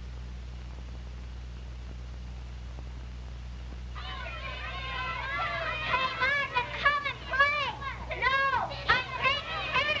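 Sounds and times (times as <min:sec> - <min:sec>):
film soundtrack hum and hiss: 0:00.0 - 0:10.0
children shouting at play: 0:04.0 - 0:10.0.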